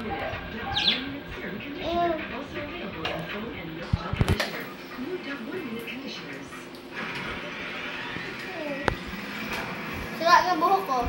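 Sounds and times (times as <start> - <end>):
budgerigar chirping: 0.6 - 1.1.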